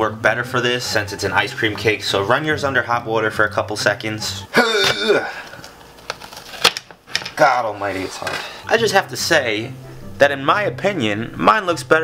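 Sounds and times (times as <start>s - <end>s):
knife cracking frozen cake: 5.5s - 6.9s.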